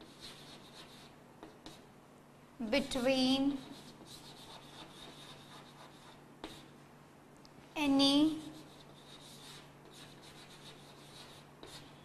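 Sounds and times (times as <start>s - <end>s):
chalk scratching on blackboard: 0.0s - 1.8s, 3.5s - 6.7s, 8.3s - 12.0s.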